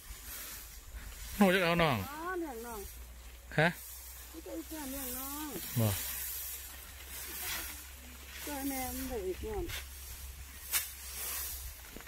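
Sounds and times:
faint steady hiss: 0.0s - 12.0s
person speaking: 4.3s - 6.1s.

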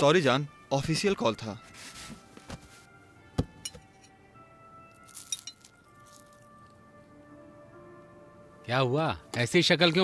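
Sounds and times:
soft background music: 0.0s - 10.0s
spoon clinking glass: 5.0s - 6.4s.

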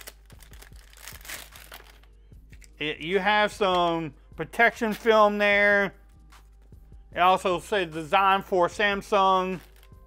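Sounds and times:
plastic sleeve crinkling: 0.0s - 2.8s, 9.5s - 10.0s.

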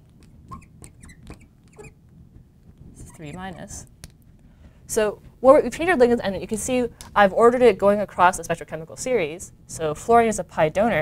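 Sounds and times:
marker squeaking on glass: 0.2s - 2.0s, 2.9s - 3.9s.

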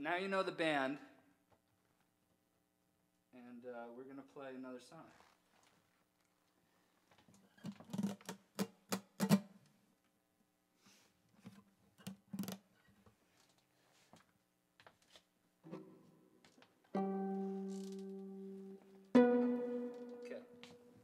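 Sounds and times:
acoustic guitar plucking and strumming: 16.9s - 21.0s.

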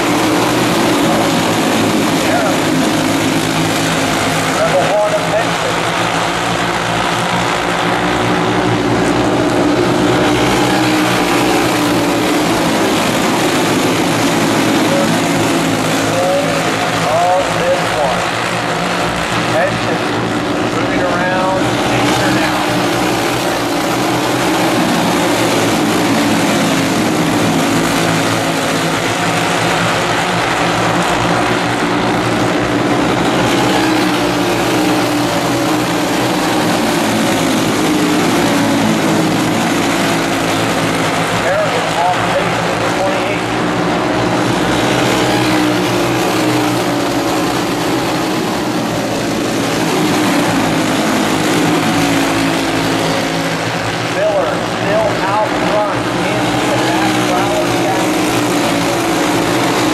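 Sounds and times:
kart engine passing: 0.0s - 59.9s
kart engines droning: 0.0s - 59.9s.

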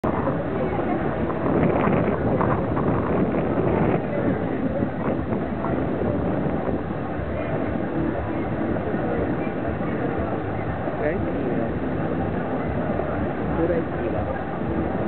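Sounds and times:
steady rushing noise: 0.0s - 15.0s.

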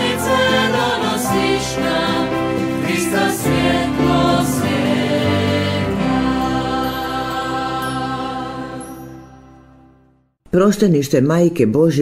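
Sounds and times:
choir holding hymn chord: 0.0s - 10.2s.

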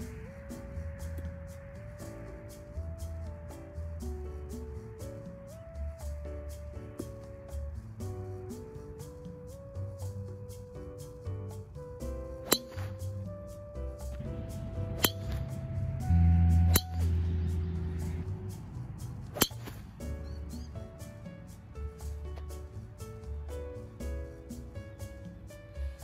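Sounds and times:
background music with melody: 0.0s - 26.0s
golf club striking ball: 12.4s - 12.9s, 14.8s - 17.4s, 19.3s - 19.8s.

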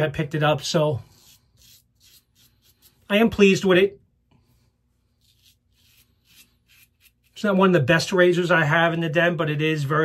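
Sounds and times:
razor scraping stubble: 0.2s - 3.6s, 5.0s - 7.7s.

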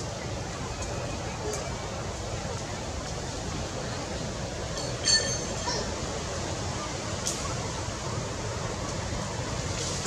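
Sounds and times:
rushing wind-like background noise: 0.0s - 10.0s.

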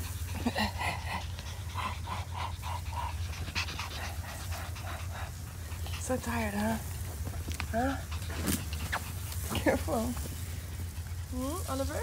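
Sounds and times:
dog panting rapidly: 0.0s - 12.0s
steady low hum: 0.0s - 12.0s.

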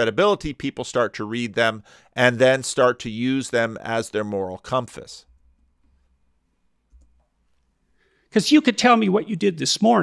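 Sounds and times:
faint computer mouse click: 6.9s - 7.3s.

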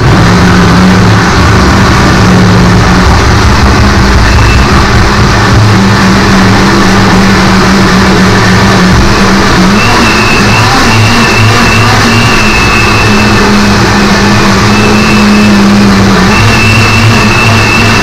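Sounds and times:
blender running: 5.5s - 18.0s.

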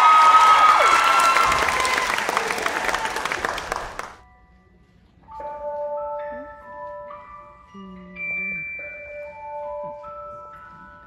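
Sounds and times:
whoops: 0.0s - 3.4s
audience applauding and cheering: 0.0s - 4.2s
ringing bell-like music: 4.2s - 11.0s.

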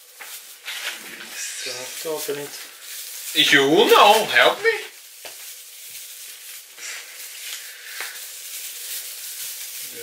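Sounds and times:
plastic branches rustling: 0.0s - 10.0s.

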